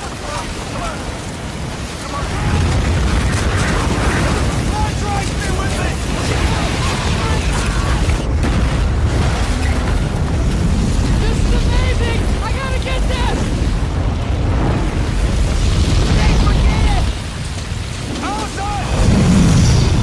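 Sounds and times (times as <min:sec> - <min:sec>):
rumble of wind and flames: 0:00.0 - 0:20.0.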